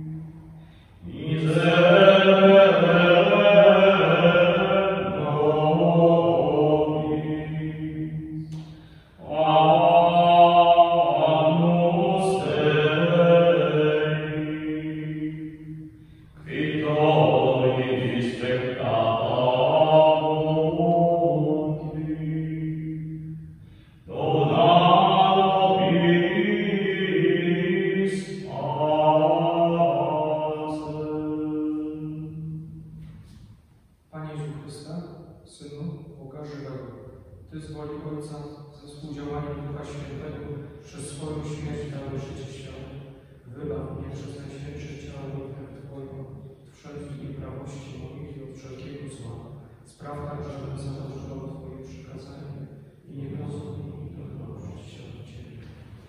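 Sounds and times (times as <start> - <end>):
man chanting a prayer: 0.0 - 8.5, 9.2 - 23.4, 24.0 - 32.9, 34.1 - 56.0.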